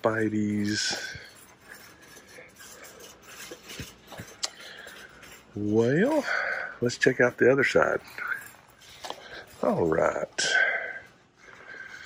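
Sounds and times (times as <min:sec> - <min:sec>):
store background noise: 0:00.0 - 0:12.0.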